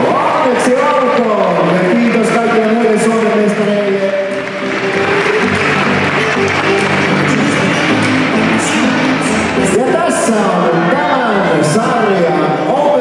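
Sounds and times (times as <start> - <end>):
crowd applauding and cheering: 0.0 - 11.8
music playing: 0.0 - 13.0.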